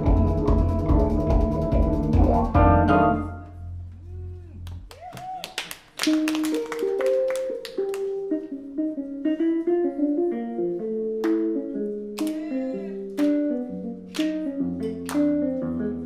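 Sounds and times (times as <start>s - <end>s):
keyboard music: 0.0s - 3.8s, 6.1s - 16.0s.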